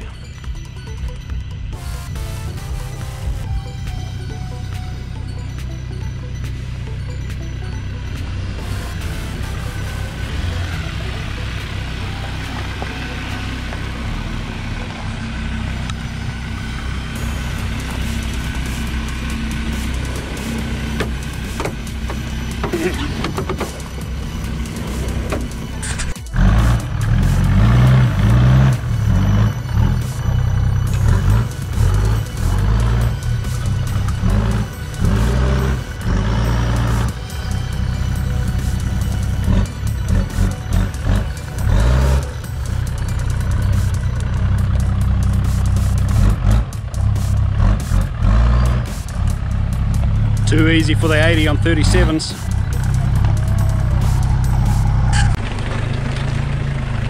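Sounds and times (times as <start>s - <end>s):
engine pulling at low revs: 0.0s - 57.0s
off-road engine revving in surges: 1.8s - 57.0s.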